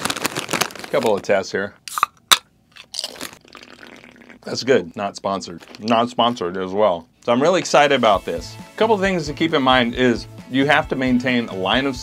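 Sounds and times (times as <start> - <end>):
drinking from a can: 3.2 - 4.6.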